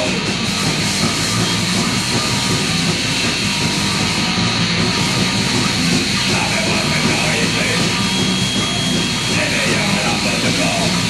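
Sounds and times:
distorted punk rock instrumental: 0.0s - 11.0s.

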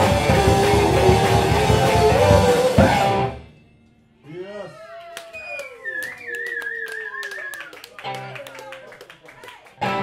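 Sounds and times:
audience cheering: 4.6s - 10.0s
audience clapping: 5.0s - 10.0s.

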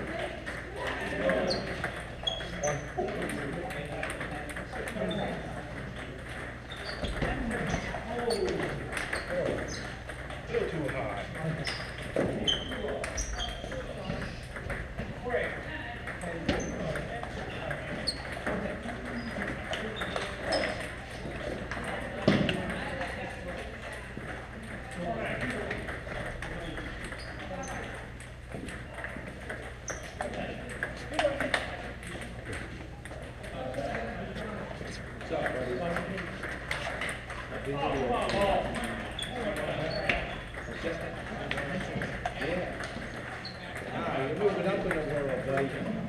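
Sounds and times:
table tennis balls clicking: 0.0s - 46.0s.

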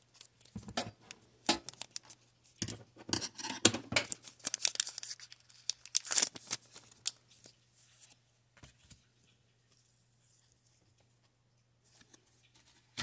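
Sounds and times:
foil wrapper crinkling and tearing: 1.4s - 2.6s, 4.1s - 8.2s.

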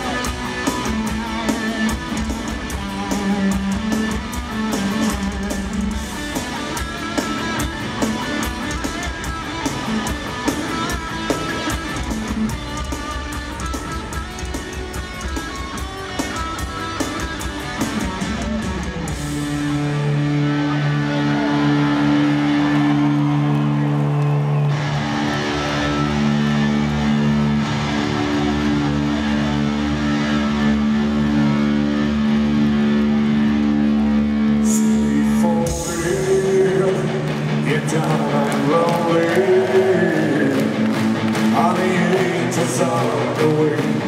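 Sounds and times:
heavy metal band playing live: 0.0s - 44.0s.

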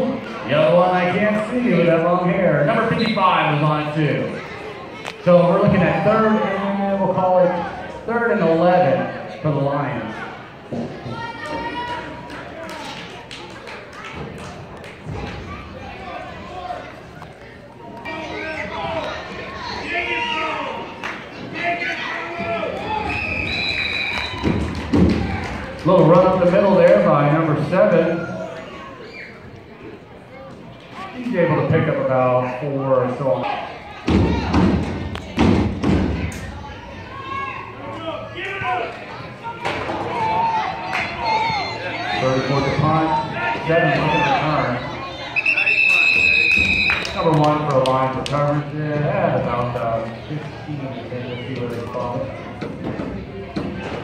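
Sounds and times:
people talking in background: 0.0s - 54.0s.

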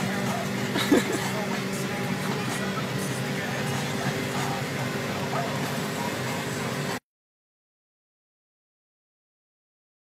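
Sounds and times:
car cabin road noise: 0.0s - 7.0s.

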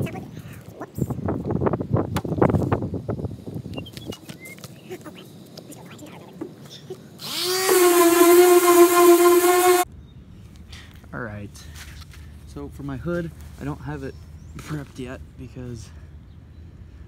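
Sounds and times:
power tool whining: 7.2s - 9.9s.

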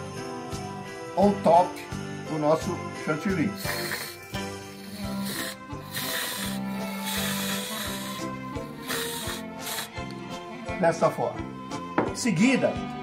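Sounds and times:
background music with held tones: 0.0s - 13.0s
cream siphon hissing and sputtering: 3.4s - 10.1s.

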